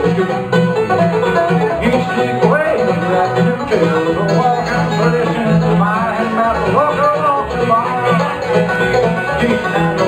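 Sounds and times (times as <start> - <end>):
acoustic guitar picking: 0.0 - 10.0
banjo: 0.0 - 10.0
mandolin: 0.0 - 10.0
upright double bass: 0.0 - 10.0.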